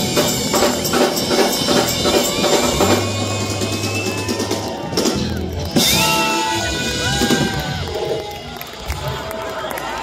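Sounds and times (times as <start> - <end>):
live band music: 0.0 - 9.3
drum kit and hand percussion: 0.0 - 9.4.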